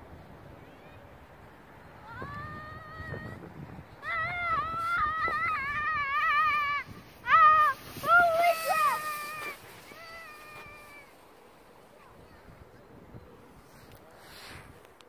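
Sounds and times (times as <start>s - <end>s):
child squealing and yelling: 4.0s - 11.2s.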